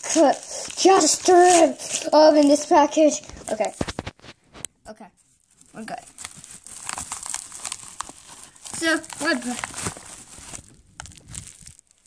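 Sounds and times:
padded envelope rustling: 0.0 - 4.6, 5.3 - 12.0.

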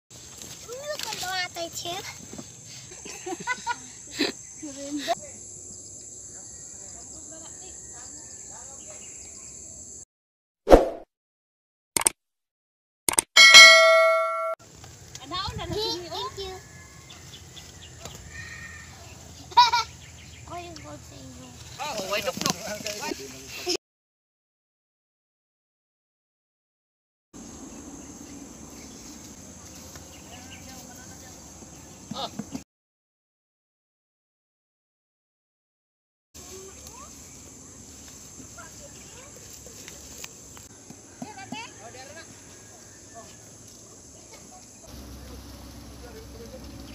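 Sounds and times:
short clicks: 12.0 - 12.2, 13.1 - 13.3
bright bell ding: 13.4 - 14.6.

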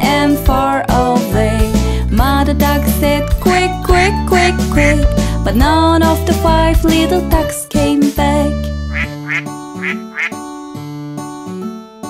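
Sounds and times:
children's song instrumental: 0.0 - 10.4
cartoon duck quacking: 8.9 - 10.4.

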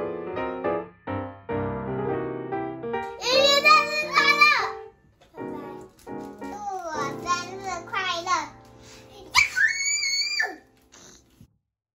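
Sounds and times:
faint background music: 3.0 - 11.5
child squealing: 9.3 - 11.2.

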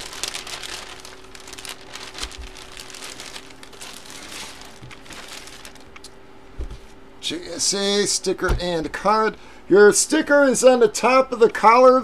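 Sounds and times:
plastic bag crinkling: 0.0 - 6.1.

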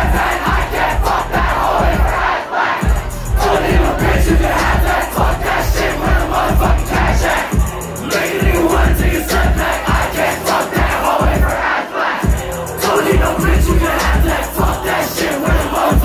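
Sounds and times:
crowd shouting along: 0.0 - 16.0
rap song over loudspeakers: 0.0 - 16.0.

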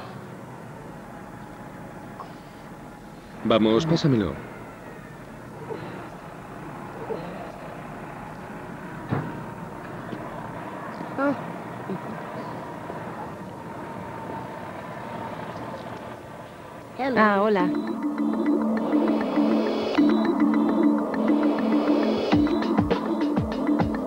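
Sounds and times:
faint voices: 0.0 - 17.8
street background noise: 0.0 - 24.0.

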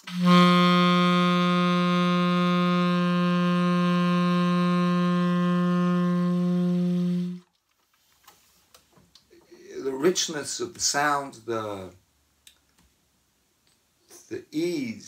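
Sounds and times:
tenor saxophone low note: 0.0 - 7.4.

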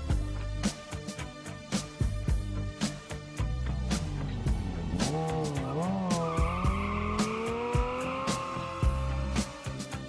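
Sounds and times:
music with steady beat: 0.0 - 10.0
motorcycle engine revving: 3.9 - 10.0
tyre squealing on asphalt: 5.0 - 10.0.

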